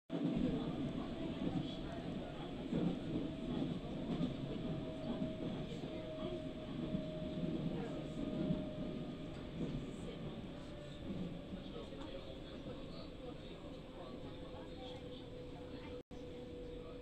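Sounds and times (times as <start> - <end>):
train low rumble: 0.1 - 17.0.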